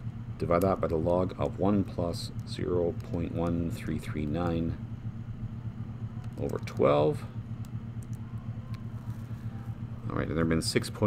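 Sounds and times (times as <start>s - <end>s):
low background hum: 0.0s - 11.0s
faint clicks: 7.6s - 8.9s.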